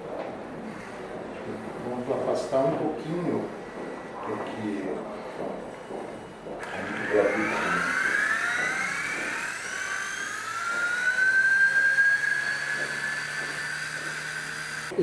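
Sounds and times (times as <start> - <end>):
rc helicopter motor whine: 6.4 - 15.0.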